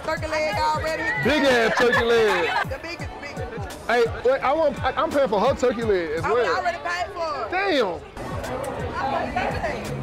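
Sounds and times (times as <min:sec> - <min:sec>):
background music: 0:00.0 - 0:10.0
indistinct chatter of voices: 0:00.0 - 0:10.0.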